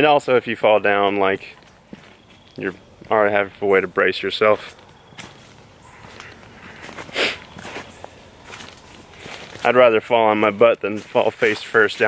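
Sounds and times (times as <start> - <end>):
footsteps crunching through dry leaves: 1.5 - 12.0.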